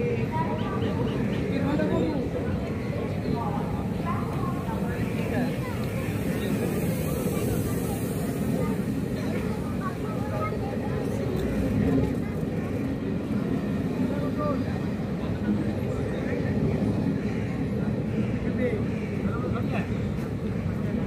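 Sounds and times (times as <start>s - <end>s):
faint voices: 0.0s - 21.0s
train wheels rumbling on rails: 0.0s - 21.0s.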